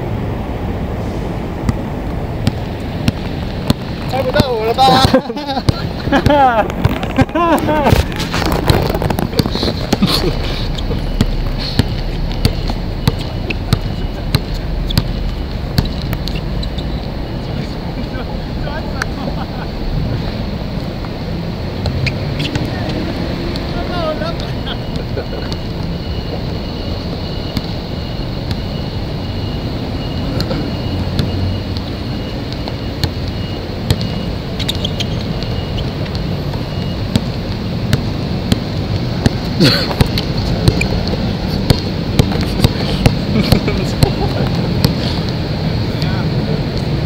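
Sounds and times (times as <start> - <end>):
steady low rumble: 0.0 - 34.6
rushing noise: 0.0 - 47.0
basketball bouncing on court: 1.6 - 17.1, 21.8 - 23.7, 24.4 - 45.0
people laughing: 4.6 - 8.1, 9.4 - 11.7, 13.3 - 14.9, 17.5 - 20.3, 22.8 - 25.8, 42.5 - 45.2.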